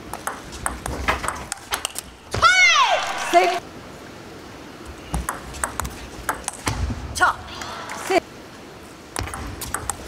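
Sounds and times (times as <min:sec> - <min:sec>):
table tennis ball clicking: 0:00.1 - 0:02.1, 0:09.2 - 0:10.0.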